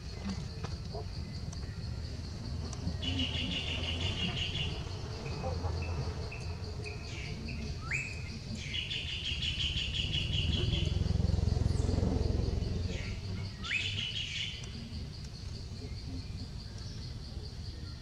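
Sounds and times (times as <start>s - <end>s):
insect buzz: 0.0s - 18.0s
low background rumble: 0.0s - 18.0s
songbird whistle and trill: 7.5s - 10.7s.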